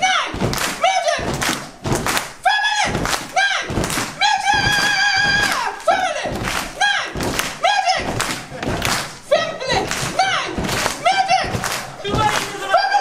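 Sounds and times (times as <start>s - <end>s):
feet stamping on wooden steps: 0.3s - 12.8s.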